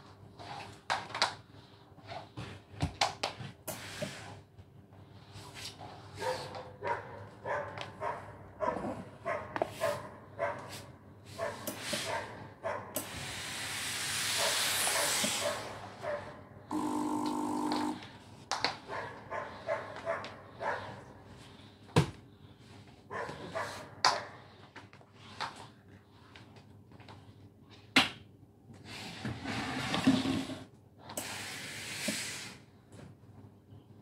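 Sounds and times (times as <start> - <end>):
steam mop hissing: 13.0 - 15.8, 31.2 - 32.6
steady buzzing: 16.7 - 18.0.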